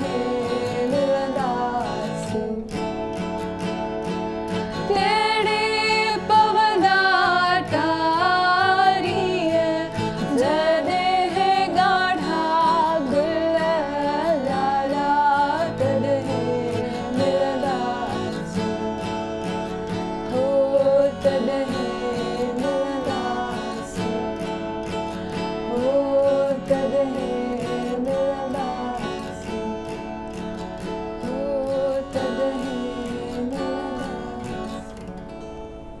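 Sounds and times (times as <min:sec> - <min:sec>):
strummed acoustic guitar: 0:00.0 - 0:36.0
woman singing: 0:00.0 - 0:36.0.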